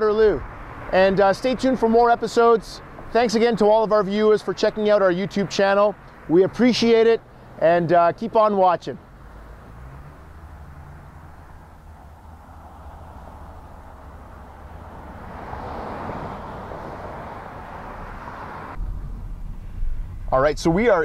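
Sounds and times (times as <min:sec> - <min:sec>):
low traffic rumble: 0:00.0 - 0:21.0
passing vehicle rush: 0:00.0 - 0:21.0.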